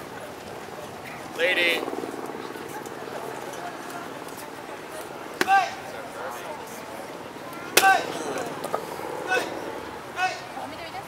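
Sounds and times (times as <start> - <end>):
sharp cracks of board strikes: 7.8 - 8.0.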